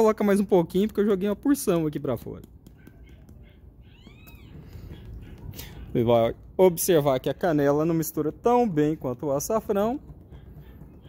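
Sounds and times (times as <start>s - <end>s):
animal high cry: 2.9s - 6.0s.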